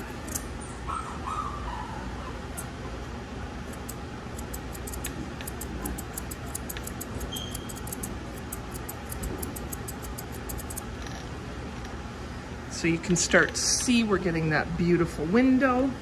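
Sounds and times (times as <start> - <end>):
shears snipping hair: 0.0 - 0.5, 3.6 - 11.2.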